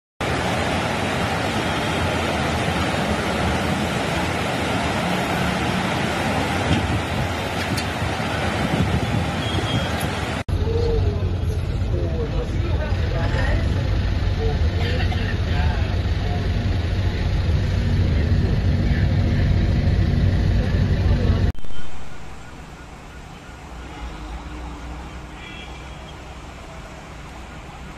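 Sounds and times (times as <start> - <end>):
steady rushing noise: 0.2 - 23.0
bus engine rumbling: 0.2 - 27.9
people talking: 9.7 - 21.5.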